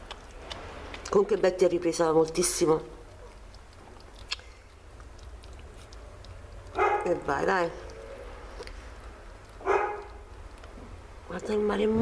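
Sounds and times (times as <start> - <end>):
dog barking: 6.7 - 7.2, 9.6 - 10.2.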